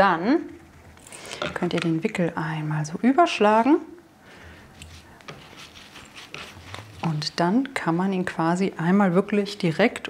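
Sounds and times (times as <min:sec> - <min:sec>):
paper towel rustling: 0:04.9 - 0:07.4.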